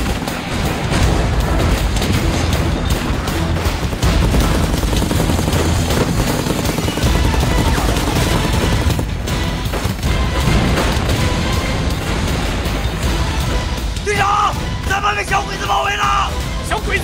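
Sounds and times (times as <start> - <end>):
dense gunfire: 0.0 - 13.4
booming explosions: 0.0 - 14.0
background music: 0.0 - 17.0.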